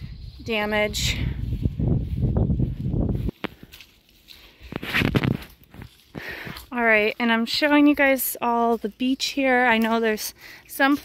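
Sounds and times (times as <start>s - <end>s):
wind rumbling on microphone: 0.0s - 3.8s, 4.6s - 6.7s.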